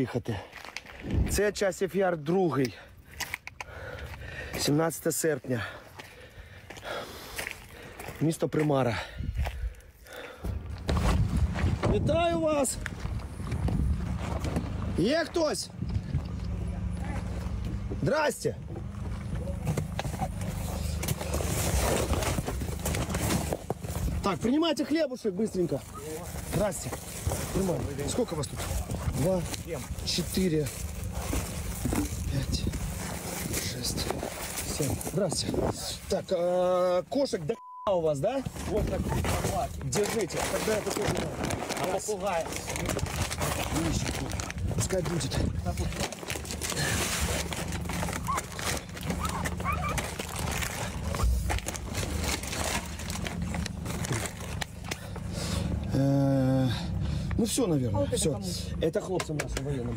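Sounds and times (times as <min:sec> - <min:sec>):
steady low rumble: 0:00.8 - 0:02.0, 0:09.2 - 0:24.5, 0:25.7 - 0:36.9, 0:38.1 - 0:59.9
rustling handling noise: 0:10.6 - 0:37.4, 0:38.1 - 0:56.0
van engine idling: 0:12.3 - 0:37.3, 0:38.1 - 0:59.9.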